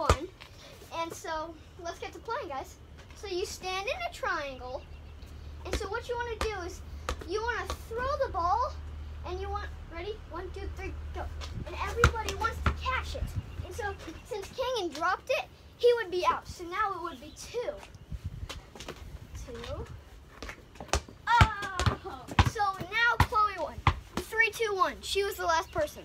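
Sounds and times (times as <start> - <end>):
basketball bouncing thuds: 0.0 - 0.4, 5.7 - 8.1, 11.4 - 13.3, 20.4 - 24.4
children calling out and laughing: 21.2 - 26.0.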